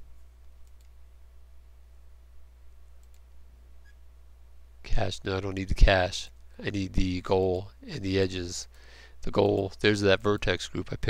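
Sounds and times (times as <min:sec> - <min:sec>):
steady low hum: 0:00.0 - 0:11.0
computer mouse clicks: 0:00.4 - 0:01.0, 0:03.0 - 0:04.0.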